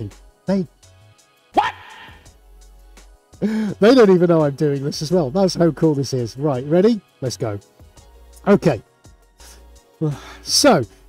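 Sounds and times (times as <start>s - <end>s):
man exclaiming: 1.6s - 2.2s.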